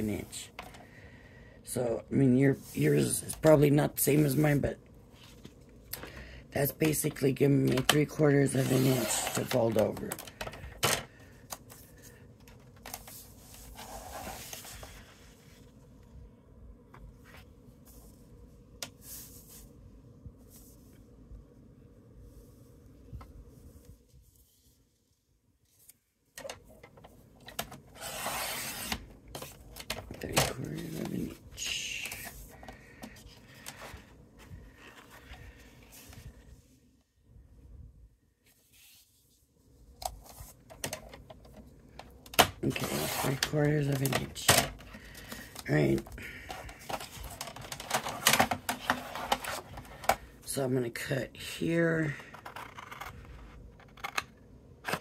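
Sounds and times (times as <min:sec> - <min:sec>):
person speaking: 0:00.0 - 0:00.8, 0:01.6 - 0:04.8, 0:06.0 - 0:10.4, 0:28.1 - 0:34.1, 0:42.4 - 0:52.9
paper rustling: 0:11.6 - 0:15.7, 0:42.6 - 0:50.2.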